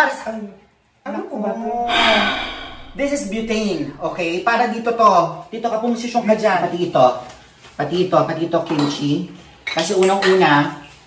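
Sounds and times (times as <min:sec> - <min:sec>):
person exclaiming with breathy gasp: 0:01.7 - 0:04.1.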